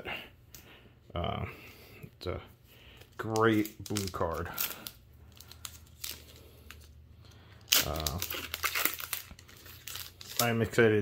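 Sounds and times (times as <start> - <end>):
foil wrapper tearing and crinkling: 3.1 - 7.0, 7.6 - 10.8.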